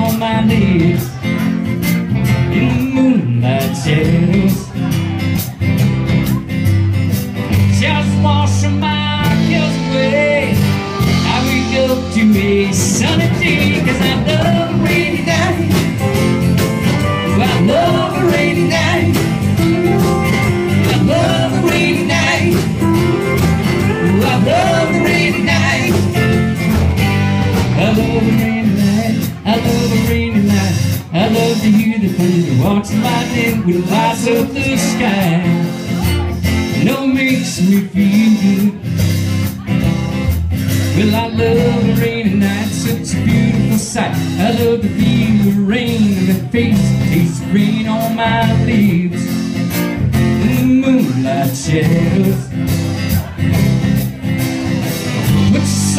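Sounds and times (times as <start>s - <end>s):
man singing: 0.0s - 5.5s, 7.4s - 39.8s, 40.8s - 54.1s, 54.8s - 55.9s
country band music: 0.0s - 55.9s
electric guitar: 0.0s - 55.9s
strummed acoustic guitar: 0.0s - 55.9s.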